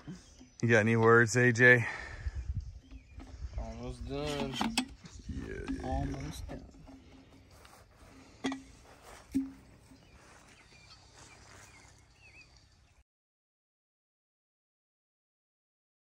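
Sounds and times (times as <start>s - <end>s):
bird chirps: 0.0s - 1.1s, 2.3s - 6.2s, 8.8s - 13.0s.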